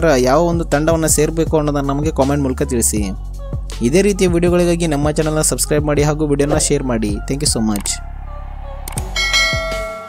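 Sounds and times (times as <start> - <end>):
low steady music bed: 0.0 - 10.0
bright ringing bell chime: 9.2 - 10.0.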